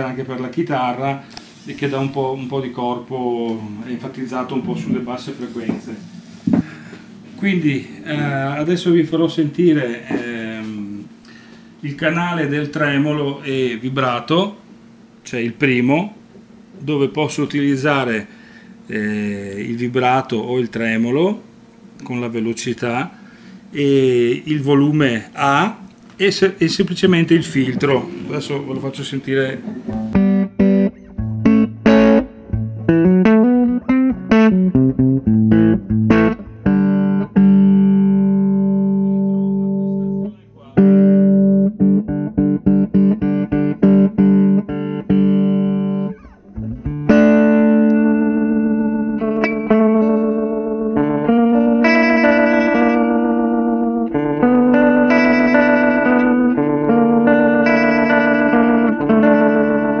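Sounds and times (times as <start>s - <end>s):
electric guitar with tremolo: 29.6s - 60.0s.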